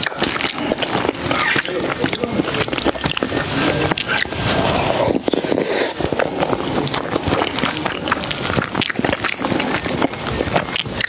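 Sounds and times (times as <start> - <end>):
small clicks and wet squelches: 0.0 - 11.0.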